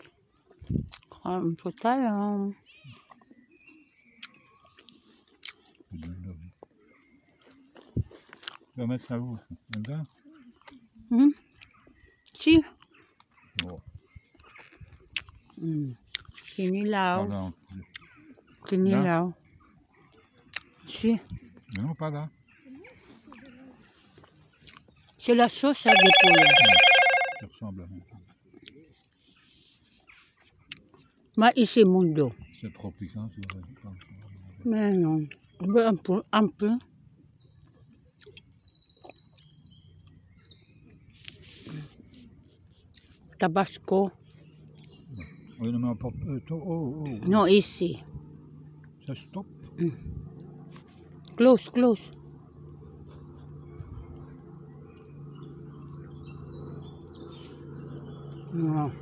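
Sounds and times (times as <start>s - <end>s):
faint bird chirps: 25.9s - 27.4s.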